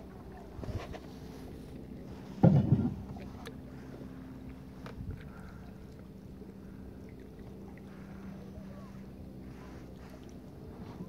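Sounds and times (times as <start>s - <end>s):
faint low hum: 0.0s - 11.0s
paddle splashing water: 0.0s - 11.0s.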